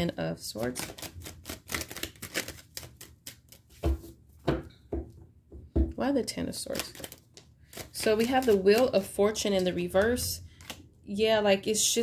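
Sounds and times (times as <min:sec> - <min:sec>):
cards being shuffled: 0:00.6 - 0:04.1, 0:06.7 - 0:10.8.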